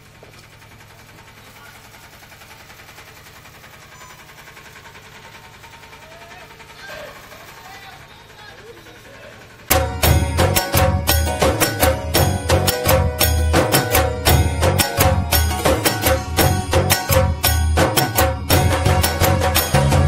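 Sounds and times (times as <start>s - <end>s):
procession music with drums and singing: 9.6s - 20.0s.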